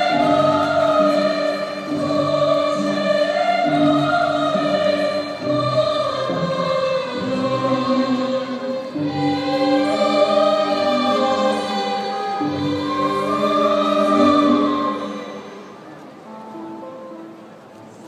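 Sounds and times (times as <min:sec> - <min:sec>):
choir holding long notes: 0:00.0 - 0:17.8.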